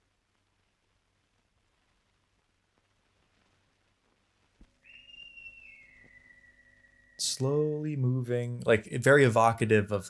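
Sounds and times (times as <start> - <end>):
faint low hum: 0.0 - 10.0
faint high whistle-like note: 4.8 - 7.3.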